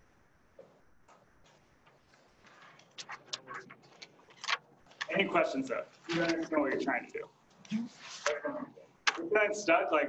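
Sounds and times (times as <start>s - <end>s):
laptop keyboard typing: 1.8s - 5.3s.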